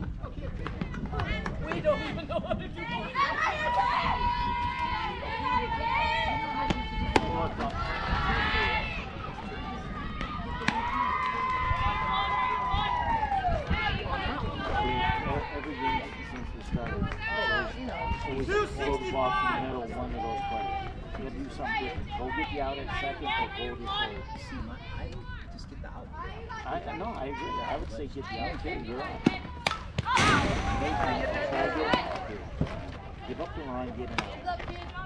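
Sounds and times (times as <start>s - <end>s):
people shouting and calling out: 0.3s - 35.0s.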